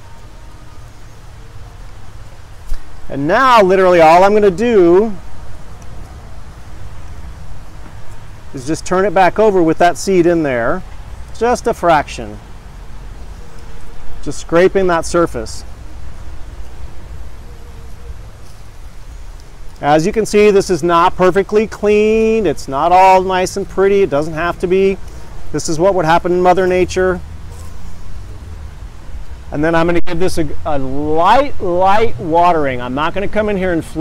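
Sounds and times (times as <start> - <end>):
steady outdoor hiss: 0.0 - 34.0.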